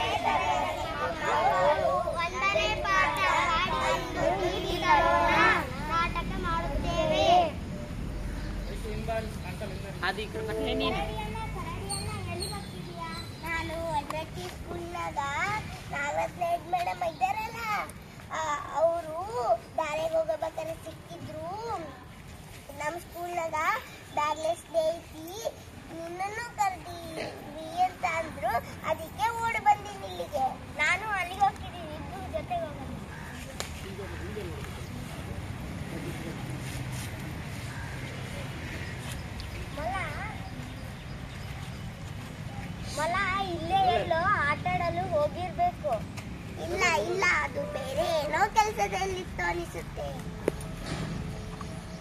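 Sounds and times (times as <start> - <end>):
child singing sing-song phrases: 0.0 - 7.6
children talking: 0.0 - 52.0.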